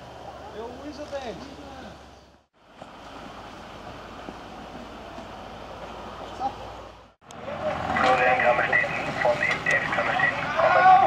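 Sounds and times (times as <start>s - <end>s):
fire engine running: 7.2s - 11.0s
people's voices: 7.3s - 11.0s.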